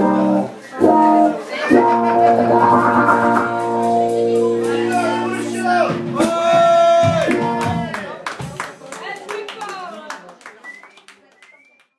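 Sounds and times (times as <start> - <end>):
live band chord: 0.0 - 8.0
scattered voices: 0.0 - 8.8
audience clapping: 7.0 - 11.9.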